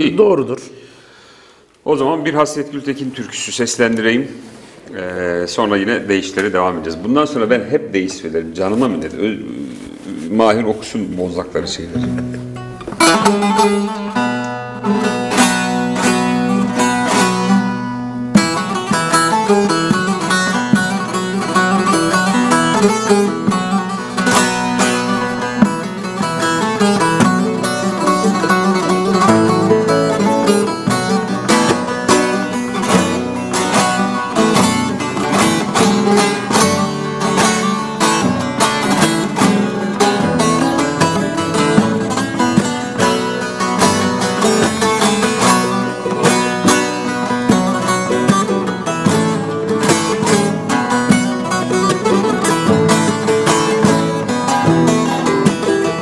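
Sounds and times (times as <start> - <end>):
long-necked lute picked solo: 12.0 - 56.0.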